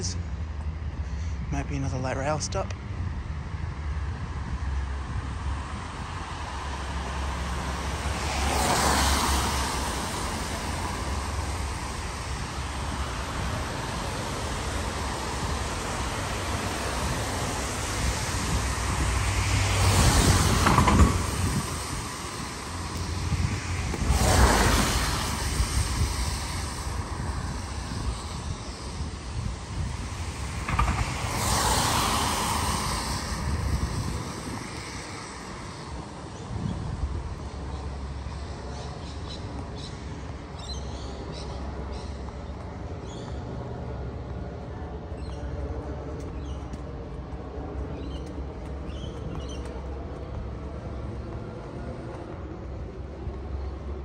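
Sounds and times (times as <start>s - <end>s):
wind rumble on microphone: 0.0s - 54.0s
tyres hissing on wet road: 3.2s - 54.0s.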